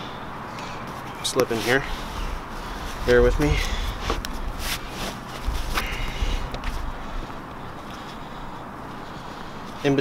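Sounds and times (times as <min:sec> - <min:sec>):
nylon fabric rustling: 0:00.9 - 0:07.8.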